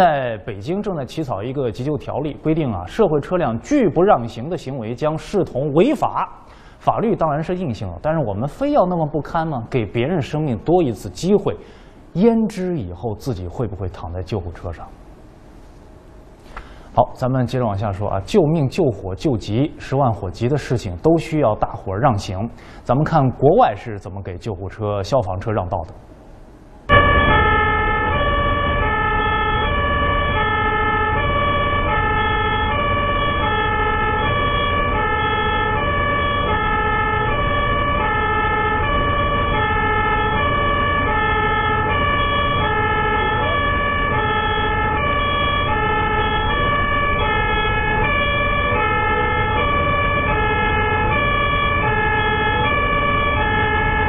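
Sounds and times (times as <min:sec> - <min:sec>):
two-tone emergency siren: 0:26.9 - 0:54.0.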